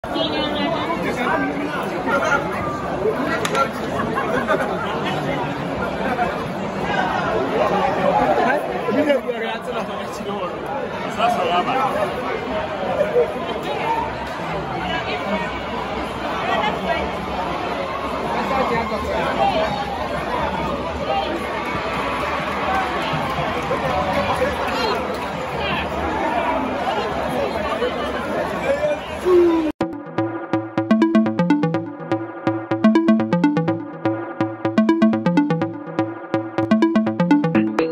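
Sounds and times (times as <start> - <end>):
stadium crowd chatter: 0.0 - 30.0
electronic music: 29.8 - 37.9.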